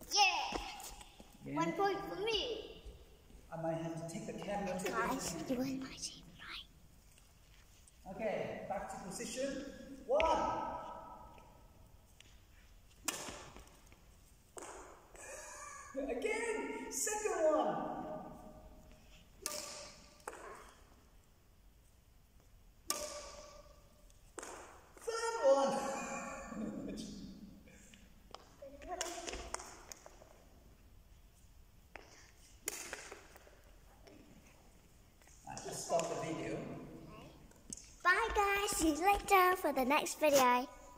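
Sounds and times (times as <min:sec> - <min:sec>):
racket striking shuttlecock: 0:12.9 - 0:15.2, 0:19.4 - 0:21.0, 0:22.8 - 0:25.0, 0:31.9 - 0:33.7.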